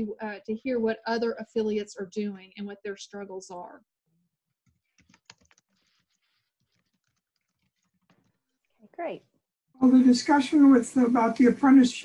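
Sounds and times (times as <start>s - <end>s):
keyboard typing: 4.6s - 8.4s.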